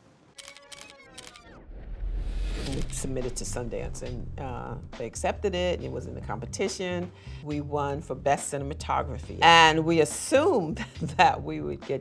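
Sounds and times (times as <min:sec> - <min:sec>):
camera shutter clicking: 0:00.4 - 0:01.5
low rumble: 0:01.6 - 0:06.0.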